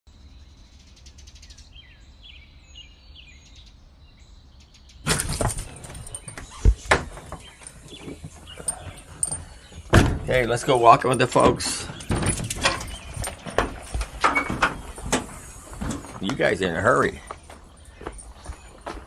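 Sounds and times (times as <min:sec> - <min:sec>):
small birds chirping: 0:00.1 - 0:19.0
doors opening with knocks: 0:05.1 - 0:17.3
handling and rustling: 0:05.1 - 0:19.0.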